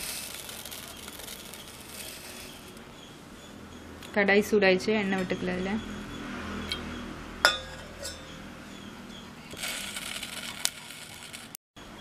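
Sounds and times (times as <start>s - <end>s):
metal clink against pot: 7.4s - 8.4s.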